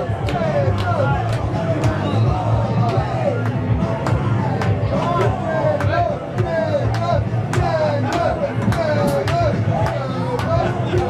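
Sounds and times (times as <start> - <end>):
distorted guitar and bass: 0.0 - 11.0
drums: 0.0 - 11.0.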